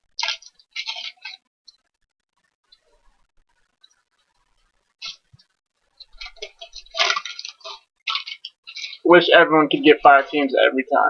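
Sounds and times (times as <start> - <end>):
plastic wrappers crinkling: 0.0 - 1.4, 6.0 - 9.0.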